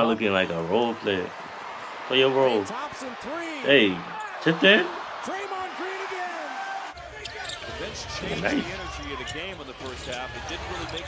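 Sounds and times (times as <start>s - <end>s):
arena crowd noise: 0.0s - 11.0s
man speaking: 2.1s - 6.5s.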